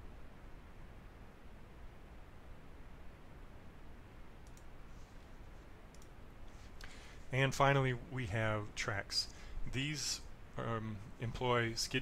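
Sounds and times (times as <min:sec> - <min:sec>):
low steady hiss: 0:00.0 - 0:12.0
computer mouse clicks: 0:04.4 - 0:04.7, 0:05.9 - 0:06.2.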